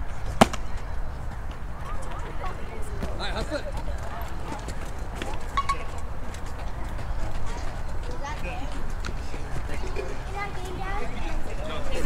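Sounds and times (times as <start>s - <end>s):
distant voices chattering: 0.0s - 12.0s.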